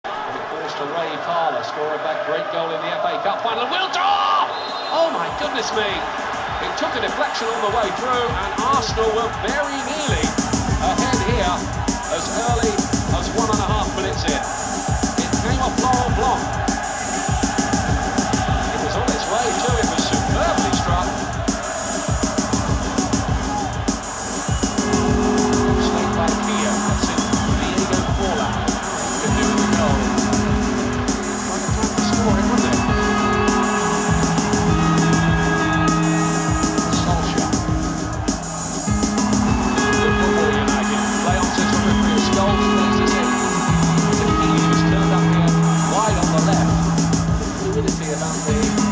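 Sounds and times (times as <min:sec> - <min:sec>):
fast electronic beat: 0:05.1 - 0:48.9.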